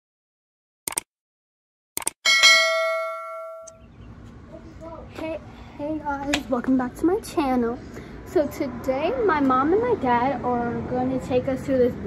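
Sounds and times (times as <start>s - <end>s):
notification bell ding: 2.2s - 3.8s.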